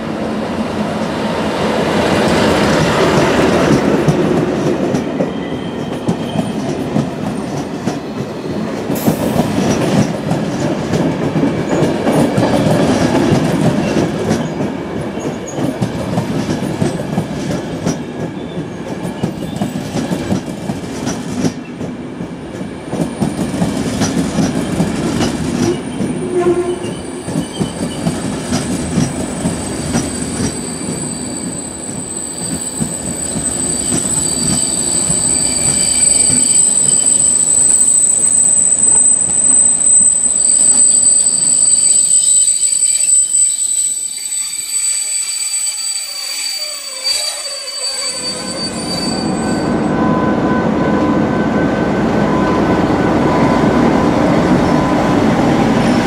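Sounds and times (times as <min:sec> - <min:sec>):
train coaches rumbling on rails: 0:00.0 - 0:56.0
train wheels squealing: 0:05.1 - 0:09.9, 0:18.0 - 0:20.4, 0:22.8 - 0:56.0.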